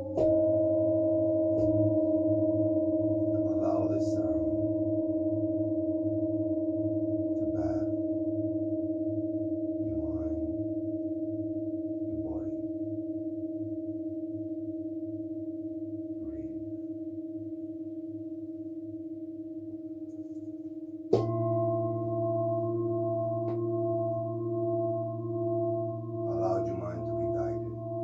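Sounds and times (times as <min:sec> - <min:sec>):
singing bowl ringing: 0:00.0 - 0:28.0
singing bowl strike: 0:00.0 - 0:28.0.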